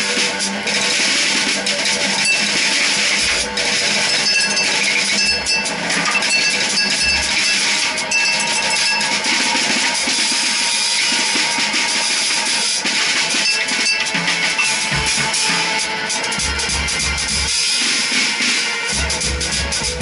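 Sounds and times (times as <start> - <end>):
cymbals and drum hits: 0.0 - 20.0.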